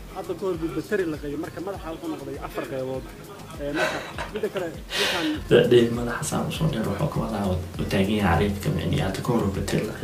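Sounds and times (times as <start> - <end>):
man speaking: 4.7 - 10.0.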